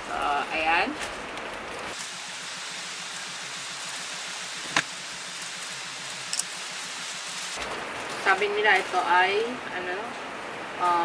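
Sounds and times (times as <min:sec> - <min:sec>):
heavy rain hissing: 0:01.9 - 0:07.6.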